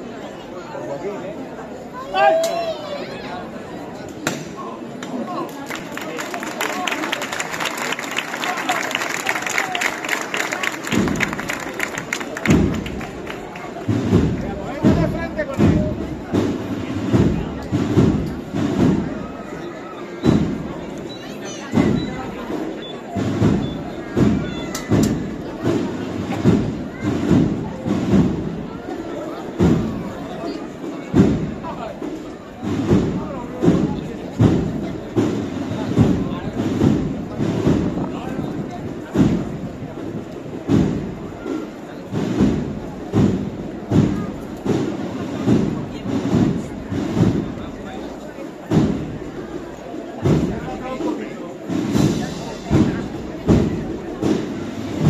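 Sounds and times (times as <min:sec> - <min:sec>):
crowd murmur: 0:00.0 - 0:55.0.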